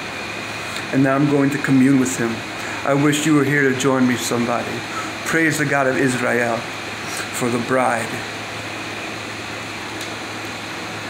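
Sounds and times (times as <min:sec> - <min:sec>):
room noise hum and hiss: 0:00.0 - 0:11.0.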